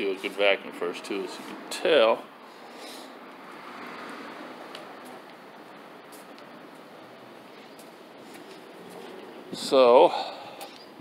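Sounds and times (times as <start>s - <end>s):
faint outdoor background noise: 0.0s - 11.0s
footsteps clicking on pavement: 4.6s - 7.0s, 7.6s - 9.3s.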